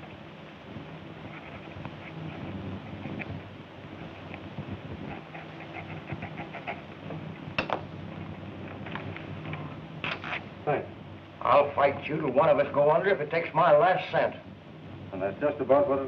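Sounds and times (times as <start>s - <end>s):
steady hiss and hum: 0.0s - 16.0s
pen scratching on paper: 1.2s - 3.4s, 5.0s - 6.9s.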